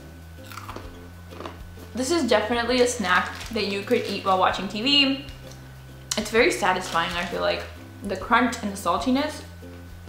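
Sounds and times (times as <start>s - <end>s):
chickpeas crunching while chewed: 0.4s - 1.6s, 3.0s - 4.7s.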